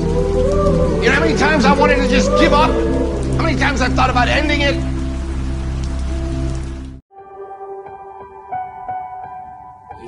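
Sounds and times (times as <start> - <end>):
rain-like hiss: 0.0 - 7.0
low background music tones: 0.0 - 10.0.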